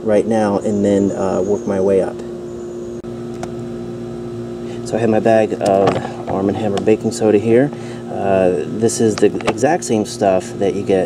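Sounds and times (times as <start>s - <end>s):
steady low machine hum: 0.0s - 11.0s.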